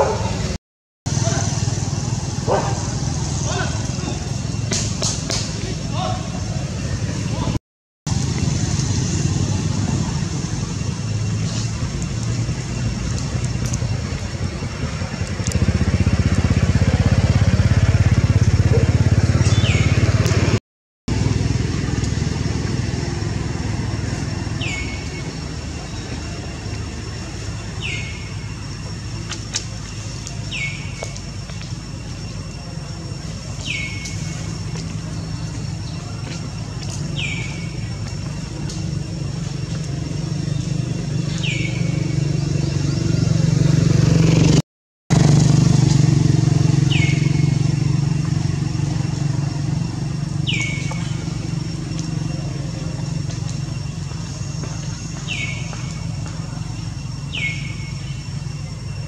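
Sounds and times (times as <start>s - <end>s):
motor vehicle engine droning: 0.0s - 59.0s
bird chirping: 18.7s - 20.5s, 24.4s - 26.4s, 27.2s - 38.1s, 40.1s - 43.2s, 50.3s - 53.0s, 53.7s - 59.0s.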